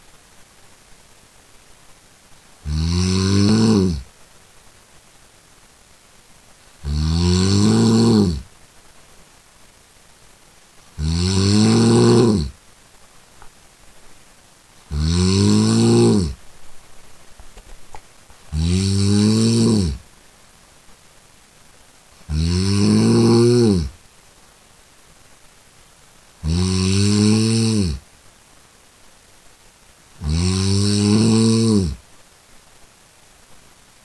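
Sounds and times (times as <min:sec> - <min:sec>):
person snoring: 0:02.6 - 0:04.0, 0:06.8 - 0:08.4, 0:11.0 - 0:12.6, 0:14.9 - 0:16.4, 0:18.5 - 0:20.0, 0:22.3 - 0:24.0, 0:26.4 - 0:28.0, 0:30.2 - 0:32.0.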